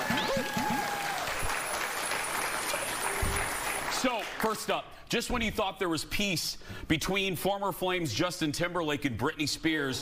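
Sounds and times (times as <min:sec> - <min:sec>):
audience applauding: 0:00.0 - 0:04.7.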